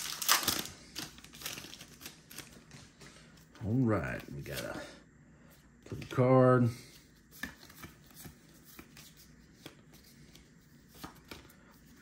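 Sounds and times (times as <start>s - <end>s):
cards sliding against each other: 6.8s - 12.0s.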